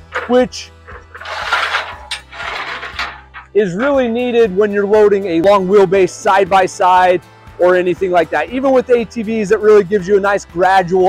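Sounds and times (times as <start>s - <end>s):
metal ramp scraping: 0.0s - 4.4s.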